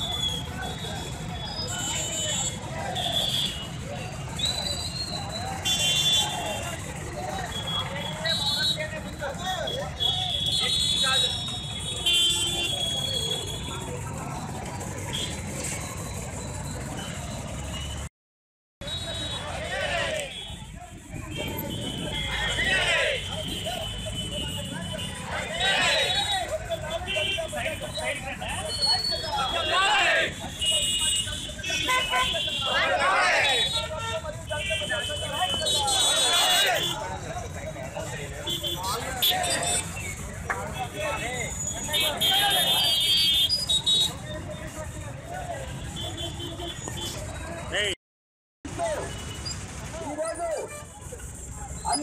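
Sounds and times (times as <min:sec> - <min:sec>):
people talking: 0:00.0 - 0:17.7, 0:18.9 - 0:48.0, 0:48.7 - 0:52.0
low traffic rumble: 0:00.0 - 0:18.1, 0:18.8 - 0:48.0, 0:48.7 - 0:52.0.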